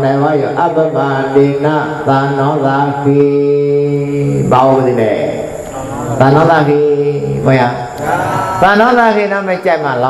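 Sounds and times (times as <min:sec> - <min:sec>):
man chanting in monotone: 0:00.0 - 0:10.0.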